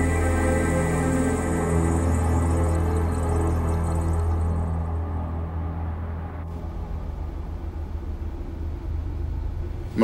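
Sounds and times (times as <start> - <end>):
low background hum and rumble: 6.4 - 10.0.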